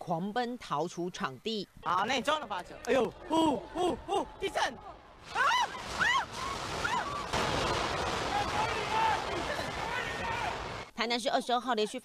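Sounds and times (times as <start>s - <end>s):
people shouting and crying: 2.8s - 10.9s
building shaking in earthquake: 5.2s - 10.9s.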